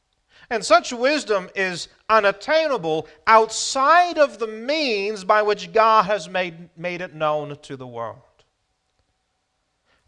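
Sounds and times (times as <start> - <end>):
man speaking: 0.5 - 8.4.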